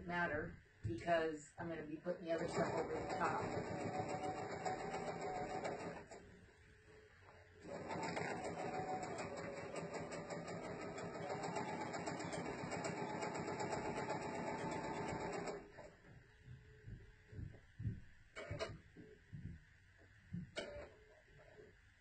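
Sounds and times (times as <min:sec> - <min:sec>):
sewing machine stitching: 0:02.4 - 0:06.2, 0:07.6 - 0:15.9.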